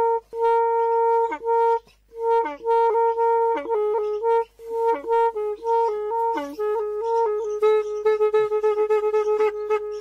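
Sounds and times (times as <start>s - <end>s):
held drone note: 0.0s - 10.0s
wind instrument melody: 0.0s - 10.0s.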